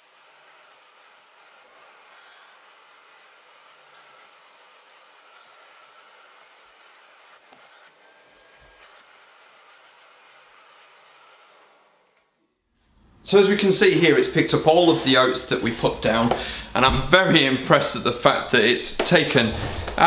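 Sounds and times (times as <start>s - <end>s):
vacuum cleaner hiss: 0.0s - 20.0s.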